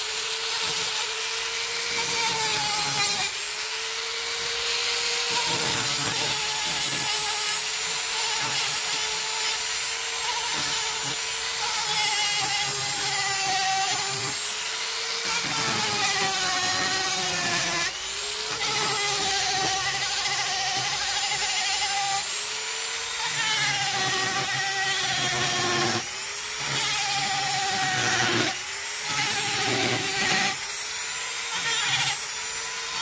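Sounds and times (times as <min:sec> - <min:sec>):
rotary tool sanding wood: 0:00.0 - 0:33.0.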